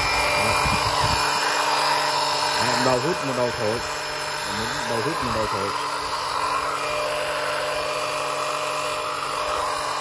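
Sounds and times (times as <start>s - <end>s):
electric pump motor whine: 0.0s - 10.0s.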